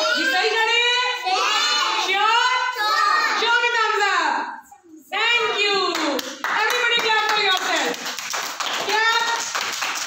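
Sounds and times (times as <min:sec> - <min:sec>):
hands clapping: 0:05.9 - 0:10.0.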